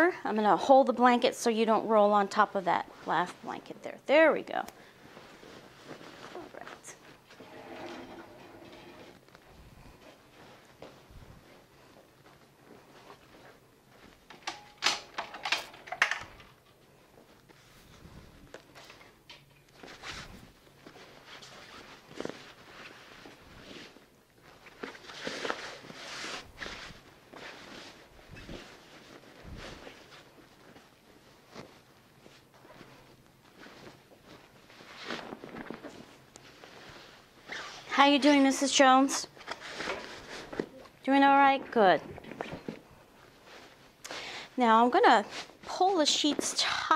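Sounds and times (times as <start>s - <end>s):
bed sheets rustling: 1.6s - 14.3s, 19.8s - 46.9s.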